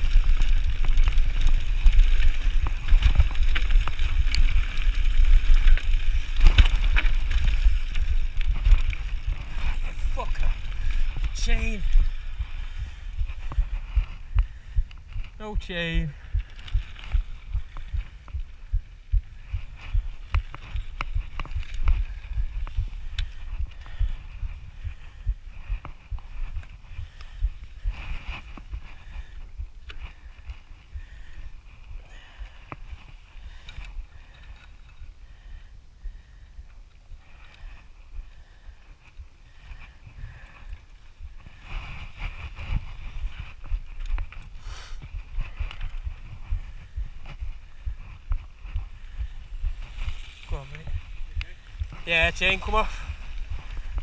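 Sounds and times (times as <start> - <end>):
bike chain clicking and rattling: 0.0 - 15.3, 16.0 - 35.6, 36.9 - 54.0
wind rumbling on microphone: 0.0 - 54.0.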